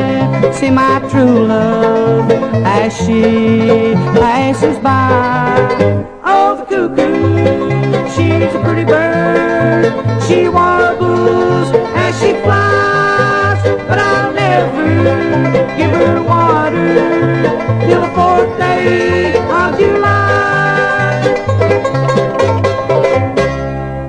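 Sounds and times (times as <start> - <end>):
bass line: 0.0 - 6.2, 6.8 - 24.0
banjo: 0.0 - 24.0
guitar: 0.0 - 24.0.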